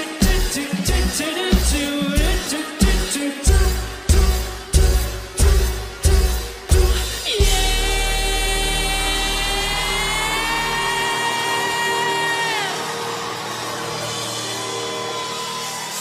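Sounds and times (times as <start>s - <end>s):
crowd noise: 0.0s - 16.0s
drum and bass hit: 0.2s - 8.8s.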